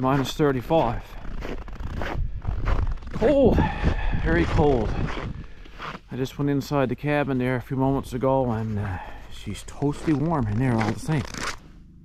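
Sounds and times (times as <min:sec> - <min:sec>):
footsteps crunching on snow: 0:00.0 - 0:06.6, 0:07.2 - 0:11.7.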